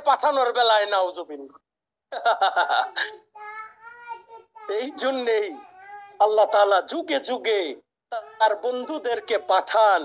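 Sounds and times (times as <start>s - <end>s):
man speaking: 0.0s - 1.6s, 4.7s - 10.0s.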